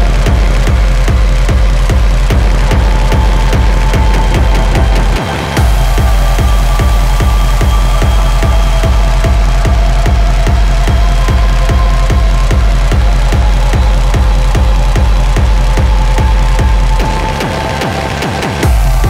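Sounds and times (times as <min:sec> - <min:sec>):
droning synth tones: 0:00.0 - 0:19.0
heavy kick drum pounding: 0:00.0 - 0:19.0.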